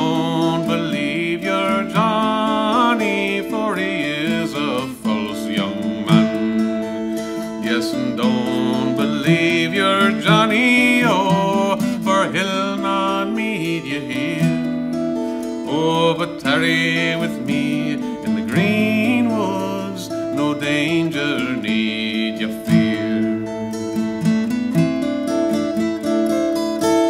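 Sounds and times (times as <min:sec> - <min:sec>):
man singing a ballad: 0:00.0 - 0:24.1
acoustic guitar picking: 0:00.0 - 0:27.0.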